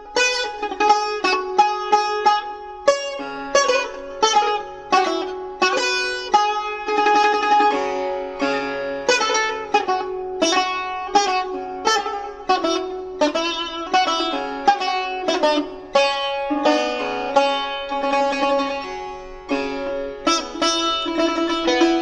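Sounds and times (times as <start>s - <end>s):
classical string instrument melody: 0.0s - 22.0s.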